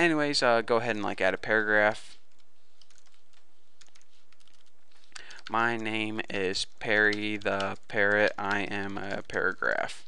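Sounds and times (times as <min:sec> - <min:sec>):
steady background hiss: 0:00.0 - 0:10.0
computer keyboard keystrokes: 0:02.3 - 0:06.0, 0:06.6 - 0:09.8.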